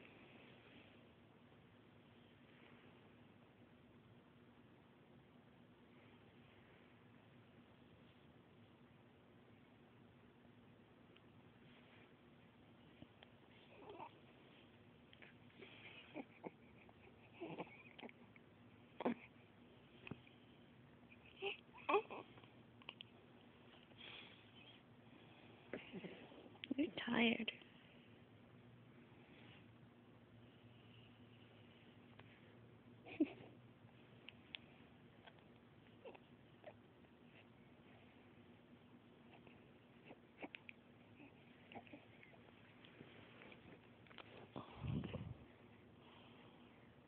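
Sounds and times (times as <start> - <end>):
infant cooing and squeaking: 13.7 - 14.2, 16.0 - 18.2, 19.0 - 19.3, 21.2 - 22.4.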